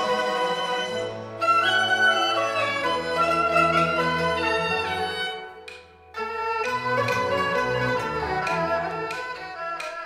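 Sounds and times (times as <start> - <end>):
bowed string melody: 0.0 - 10.0
orchestral accompaniment: 0.0 - 10.0.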